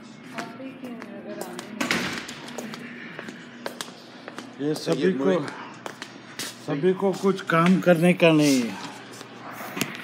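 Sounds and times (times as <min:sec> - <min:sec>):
person speaking: 0:06.8 - 0:09.0.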